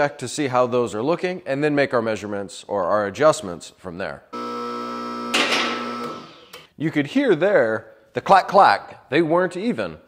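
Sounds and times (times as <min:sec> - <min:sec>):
hydraulic pump humming: 0:04.4 - 0:06.7.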